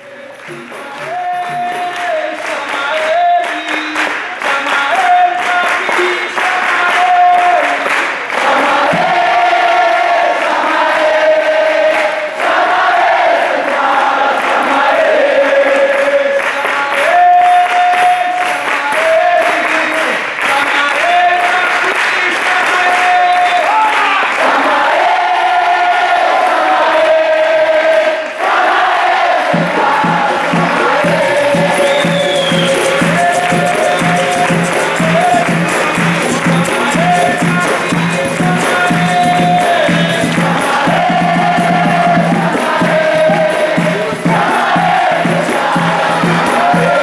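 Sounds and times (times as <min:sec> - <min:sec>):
berimbaus and percussion: 0:00.0 - 0:27.4, 0:28.4 - 0:47.0
crowd singing: 0:00.0 - 0:47.0
hand clapping: 0:00.2 - 0:47.0.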